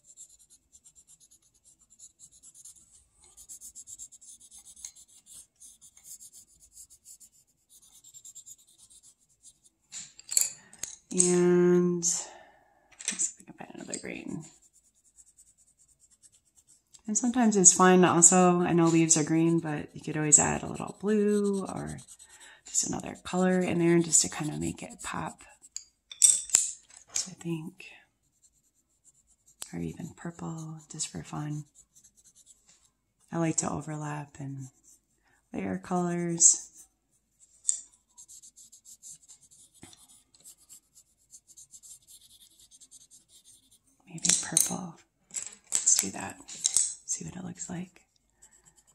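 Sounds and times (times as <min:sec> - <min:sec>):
pencil scratching on paper: 0:00.0 - 0:09.9, 0:13.6 - 0:25.8, 0:28.2 - 0:44.5, 0:48.1 - 0:48.9.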